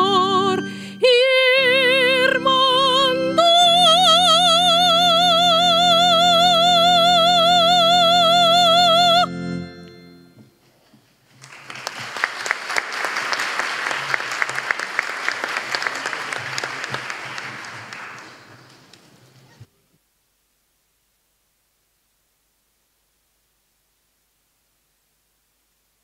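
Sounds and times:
woman singing with vibrato: 0.0 - 9.6
instrumental accompaniment: 0.0 - 10.6
audience applauding: 11.4 - 19.6.

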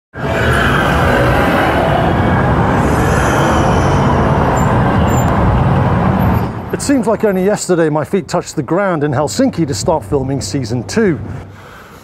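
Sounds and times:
dense road traffic: 0.2 - 12.0.

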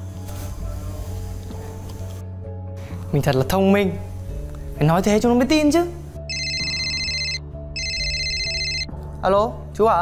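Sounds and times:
mobile phone ringing: 6.3 - 8.9.

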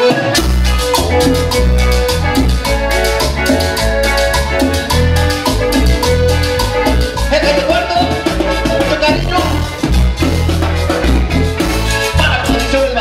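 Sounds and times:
accordion melody: 0.0 - 13.0
live cumbia band playing: 0.0 - 13.0.

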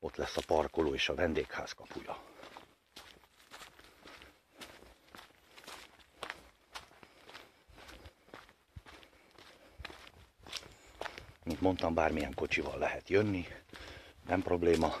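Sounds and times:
footsteps on dirt: 0.0 - 15.0.

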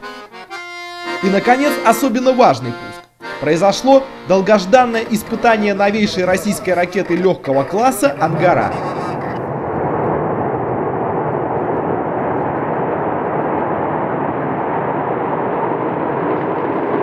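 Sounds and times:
rocket engine roaring: 4.2 - 17.0.

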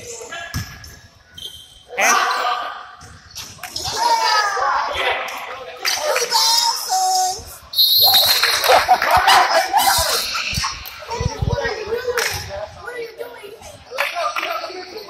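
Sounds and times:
shoe squeal: 1.2 - 2.5, 7.7 - 8.7.

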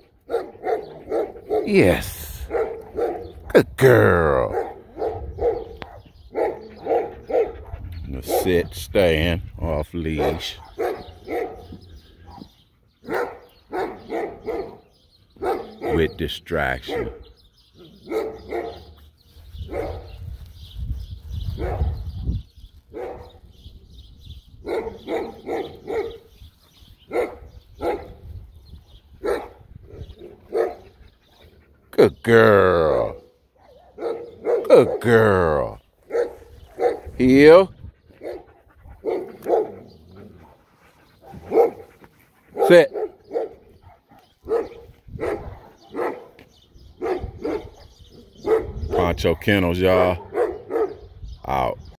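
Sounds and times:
dog barking: 0.2 - 1.7, 2.5 - 3.4, 4.5 - 7.8, 10.2 - 14.8, 15.4 - 16.1, 16.9 - 18.9, 19.7 - 20.1, 21.6 - 22.0, 22.9 - 23.3, 24.6 - 26.3, 27.1 - 28.2, 29.2 - 30.9, 33.6 - 35.0, 36.1 - 37.1, 38.2 - 40.6, 41.2 - 41.9, 42.5 - 46.4, 47.0 - 49.1, 50.2 - 51.1.

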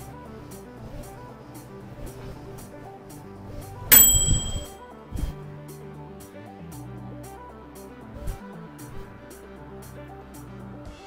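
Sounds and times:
background music with steady beat: 0.0 - 11.0
microwave timer bell ding: 3.9 - 4.8.

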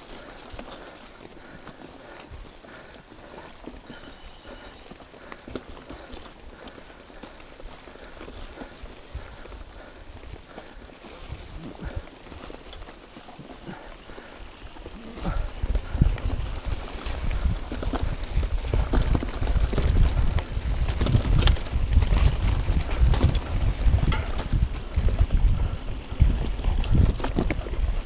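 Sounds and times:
bike rattling over bumps: 0.0 - 28.0
tyres rumbling on dirt trail: 0.0 - 28.0
wind on microphone: 15.0 - 28.0.

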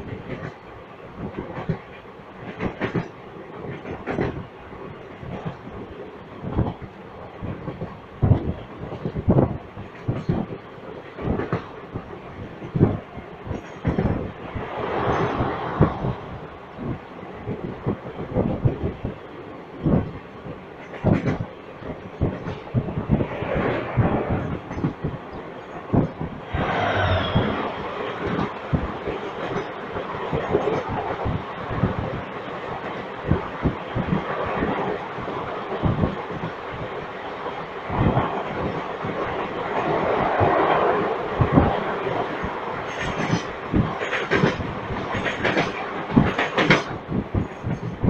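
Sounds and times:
train rolling noise: 0.0 - 48.0
rush of air: 25.9 - 29.0
wheels clacking over rail joints: 39.8 - 48.0.

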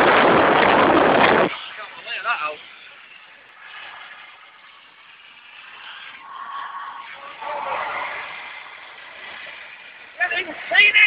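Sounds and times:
motorway traffic and tyre noise: 0.0 - 11.0.

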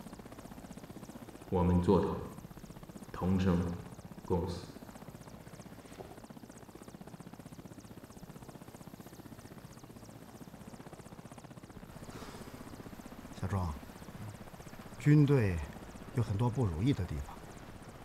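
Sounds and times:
helicopter engine and rotor drone: 0.0 - 18.0.

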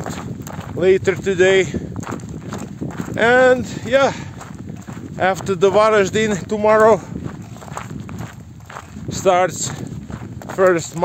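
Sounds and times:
footsteps on dry earth: 0.0 - 11.0.

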